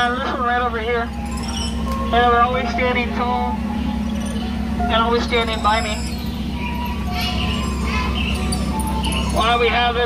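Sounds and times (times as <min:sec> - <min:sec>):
boat low hum: 0:00.0 - 0:10.0
faint music held notes: 0:00.0 - 0:10.0.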